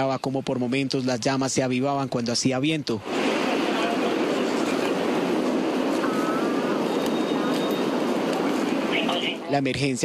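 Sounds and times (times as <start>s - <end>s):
wildfire burning: 0.0s - 10.0s.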